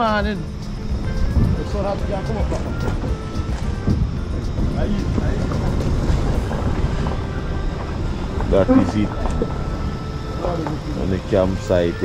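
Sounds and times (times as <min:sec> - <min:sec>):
car rumbling on dirt track: 0:01.2 - 0:09.8.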